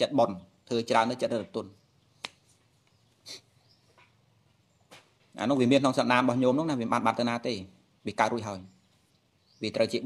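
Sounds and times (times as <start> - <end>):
man preaching: 0.0 - 1.8, 5.4 - 8.7, 9.6 - 10.0.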